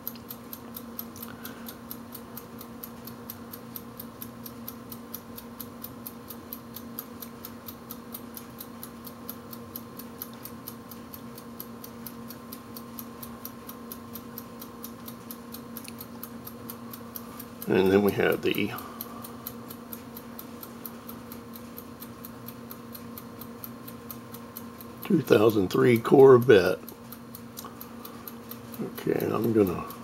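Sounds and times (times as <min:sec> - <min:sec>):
low constant hum: 0:00.0 - 0:30.0
rapid ticking: 0:00.1 - 0:30.0.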